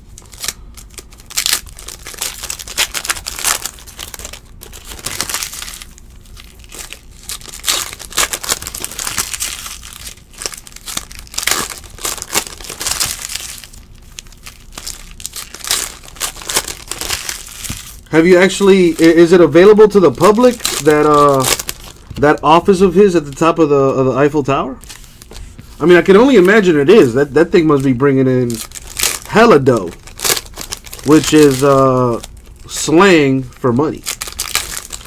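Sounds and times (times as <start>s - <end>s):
foil wrappers crinkling and tearing: 0.0s - 35.0s.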